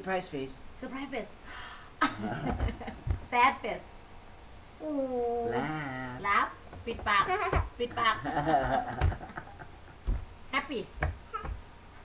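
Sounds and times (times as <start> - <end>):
soft knocks: 10.0 - 10.3.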